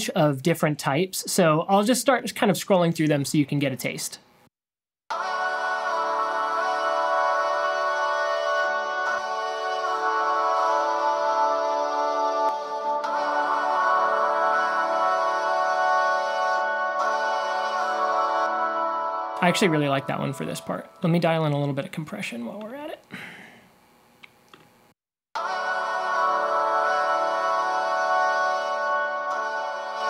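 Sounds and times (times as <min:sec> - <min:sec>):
man's breathy laugh: 0:23.1 - 0:23.6.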